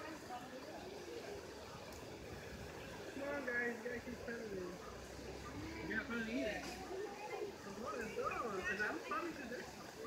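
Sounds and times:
faint chatter of people: 0.0 - 10.0.

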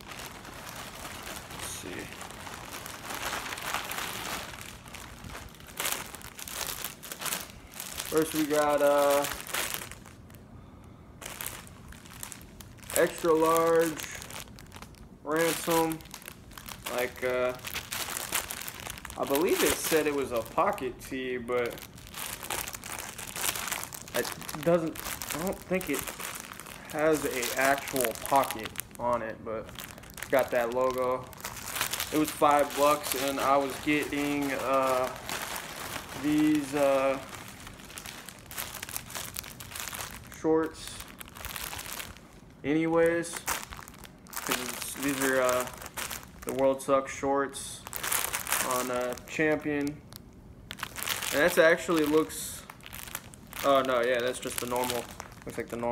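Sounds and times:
plastic bag crinkling: 0.0 - 55.9.

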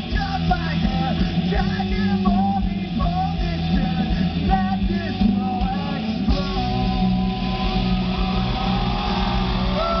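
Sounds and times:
amplified rock band: 0.0 - 10.0.

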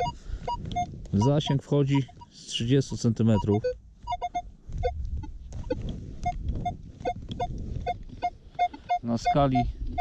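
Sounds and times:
metal detector beeps: 0.0 - 10.0
wind rumble on microphone: 4.4 - 10.0.

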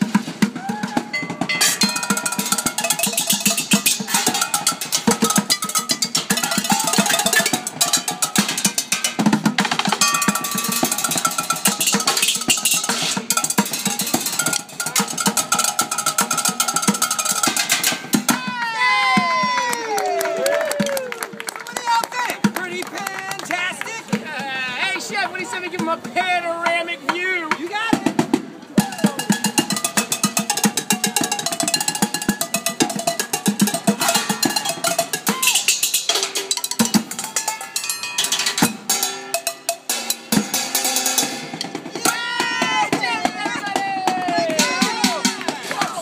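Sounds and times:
ringing metallic pitch: 1.1 - 9.2, 10.0 - 17.9, 28.9 - 40.4
metallic strikes on pots and pans: 1.1 - 18.4, 28.8 - 41.7.

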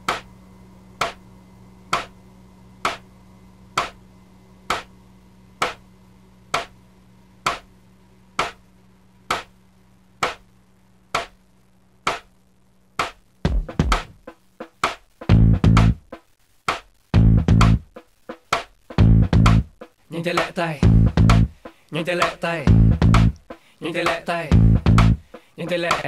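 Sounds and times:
sharp clicks in slow beat: 0.0 - 0.3, 1.0 - 1.2, 1.9 - 2.2, 2.8 - 3.1, 3.7 - 4.0, 4.6 - 5.0, 5.6 - 5.8, 6.5 - 6.8, 7.4 - 7.7, 8.4 - 9.6, 10.2 - 12.4, 14.8 - 23.6
faint low hum: 0.0 - 26.0.

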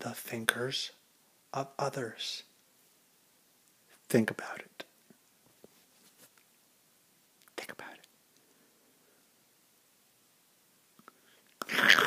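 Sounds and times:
man whispering: 0.0 - 2.5, 3.9 - 5.0, 7.4 - 8.1.

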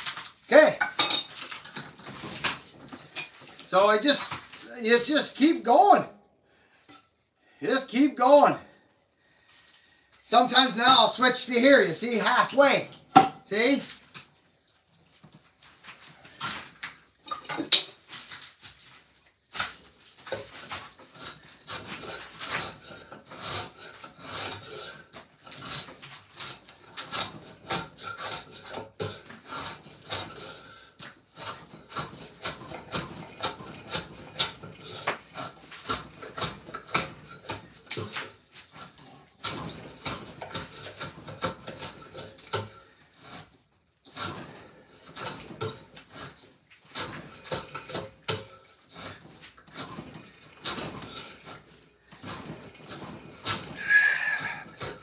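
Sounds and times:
hand tool rasping on wood: 20.6 - 43.5, 44.2 - 55.0.

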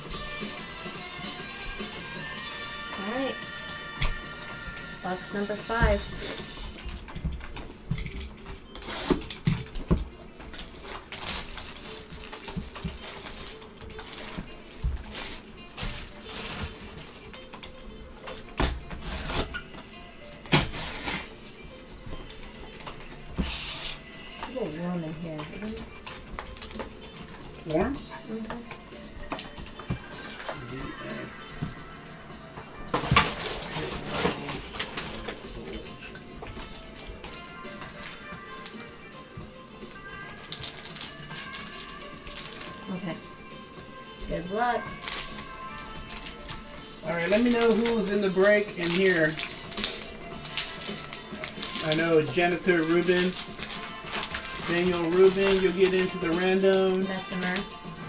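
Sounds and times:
faint background music: 0.0 - 58.0
plastic shrink wrap crinkling: 6.3 - 24.1, 25.3 - 27.3, 33.0 - 35.8, 39.9 - 43.1, 44.6 - 57.8.

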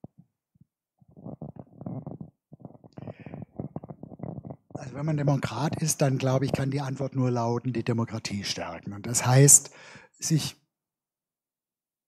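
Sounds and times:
microphone handling rumbles and knocks: 0.1 - 7.0.

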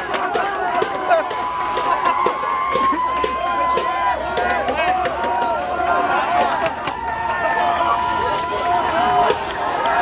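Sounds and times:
young men shouting cheers: 0.0 - 10.0.

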